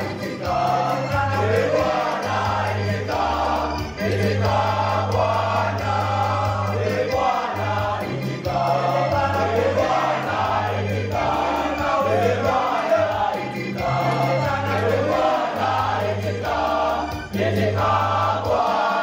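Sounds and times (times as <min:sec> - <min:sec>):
boys' choir singing a hymn: 0:00.0 - 0:19.0.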